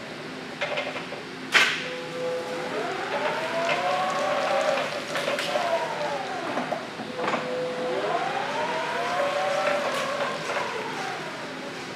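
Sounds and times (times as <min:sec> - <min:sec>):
electric forklift whining: 0:01.7 - 0:11.9.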